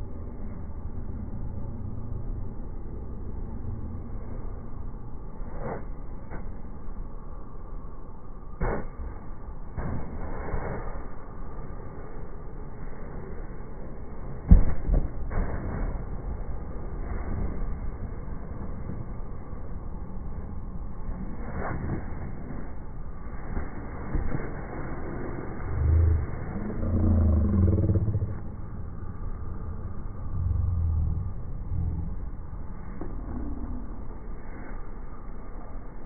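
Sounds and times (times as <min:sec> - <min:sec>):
low rumble: 0:00.0 - 0:36.0.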